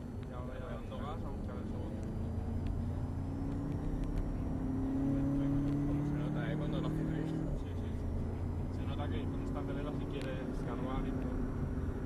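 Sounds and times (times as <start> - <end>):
car engine accelerating: 0.0 - 12.0.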